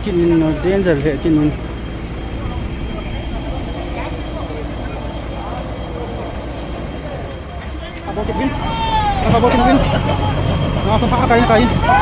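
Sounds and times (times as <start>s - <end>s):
diesel engine running: 0.0s - 12.0s.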